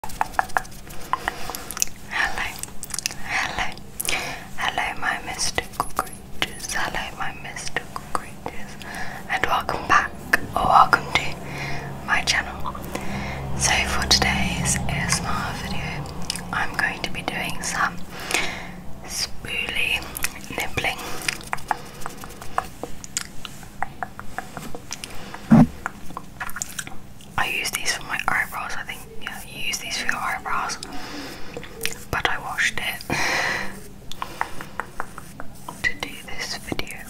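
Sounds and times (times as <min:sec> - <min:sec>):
wet mouth clicks and lip smacks: 0:00.0 - 0:02.0, 0:02.6 - 0:03.2, 0:21.2 - 0:27.3, 0:31.6 - 0:32.0
soft whispery breaths: 0:00.4 - 0:37.0.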